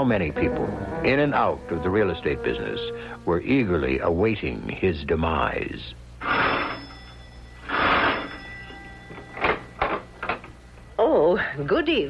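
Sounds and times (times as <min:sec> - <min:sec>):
electric doorbell ringing: 0:06.2 - 0:10.2.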